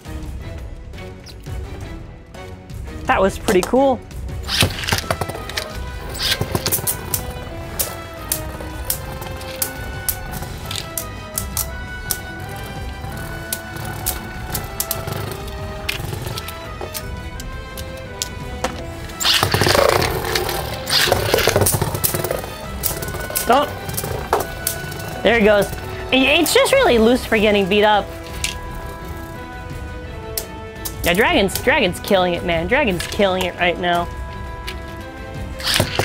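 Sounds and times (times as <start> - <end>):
background music: 0.0 - 36.0
spinning tops clashing: 4.4 - 17.1, 19.1 - 26.7, 35.6 - 36.0
clattering and scraping: 4.4 - 31.7, 32.9 - 36.0.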